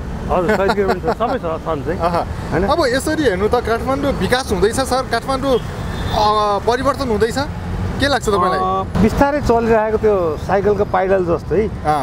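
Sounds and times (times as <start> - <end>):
street traffic rumble: 0.0 - 12.0
people talking: 0.3 - 12.0.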